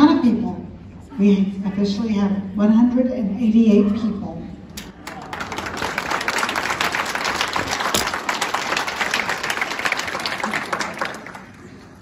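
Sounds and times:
audience applauding: 0:04.9 - 0:12.0.

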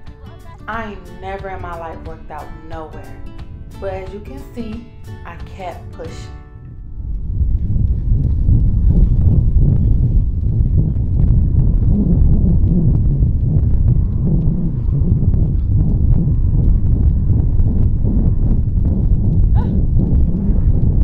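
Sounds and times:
wind buffeting microphone: 0:00.0 - 0:21.0
jogging footsteps on track: 0:06.9 - 0:21.0.

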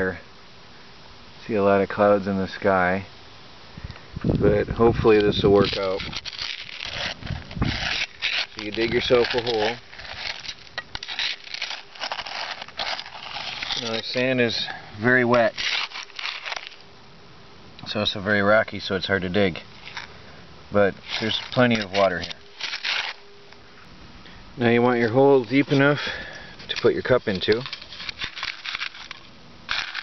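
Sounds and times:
shovel scraping into wet sand: 0:05.2 - 0:16.8, 0:21.0 - 0:23.2, 0:25.2 - 0:30.0.

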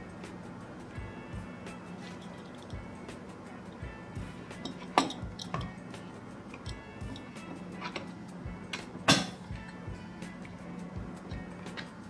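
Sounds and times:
light metallic clicks and clinks: 0:01.7 - 0:03.9, 0:04.5 - 0:12.0
sharp metal clacks: 0:04.5 - 0:10.6.

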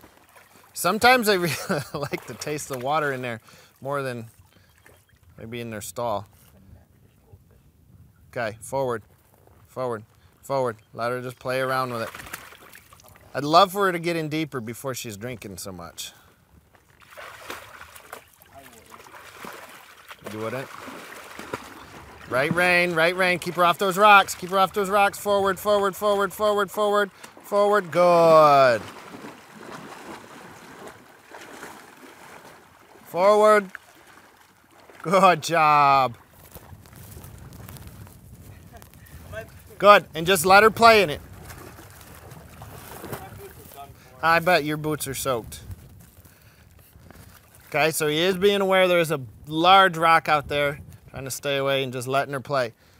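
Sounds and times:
horse pawing and splashing water: 0:00.0 - 0:03.4, 0:04.2 - 0:05.4, 0:11.6 - 0:13.3, 0:16.6 - 0:39.8, 0:40.9 - 0:43.9, 0:46.9 - 0:47.8
wind on microphone: 0:06.6 - 0:09.7, 0:36.2 - 0:44.1, 0:45.1 - 0:46.3, 0:50.4 - 0:51.3.

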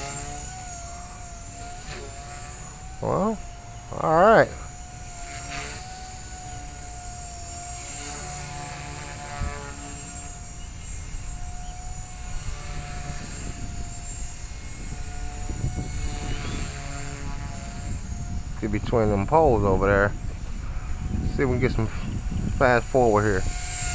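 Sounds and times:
rc helicopter motor whine: 0:00.0 - 0:23.9.

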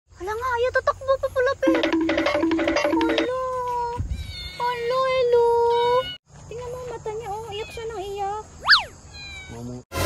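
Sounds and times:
kitten meowing: 0:08.6 - 0:09.6.

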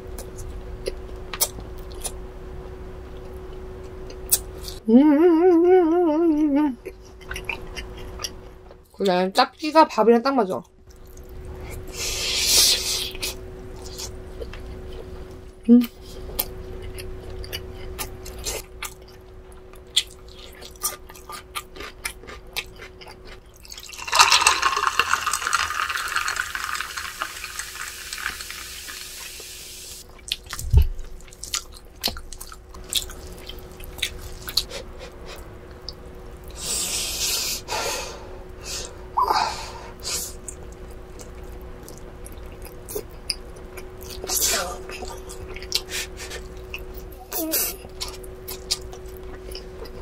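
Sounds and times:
close eating sounds with clicks: 0:00.1 - 0:02.2, 0:03.1 - 0:04.8, 0:06.8 - 0:09.7, 0:10.5 - 0:11.8, 0:12.6 - 0:27.6, 0:30.0 - 0:36.7, 0:40.1 - 0:50.0
cola pouring and fizzing: 0:23.7 - 0:29.8.

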